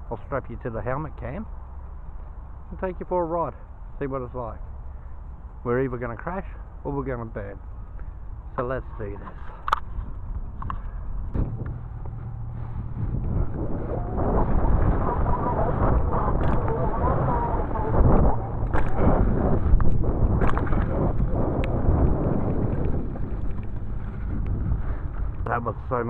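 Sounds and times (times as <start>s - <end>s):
wind buffeting microphone: 5.4s - 26.0s
bike rolling over dirt: 9.0s - 26.0s.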